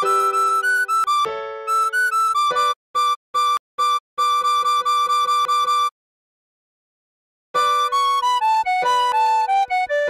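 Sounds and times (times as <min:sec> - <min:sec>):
tin whistle repeated notes: 0:00.0 - 0:05.9.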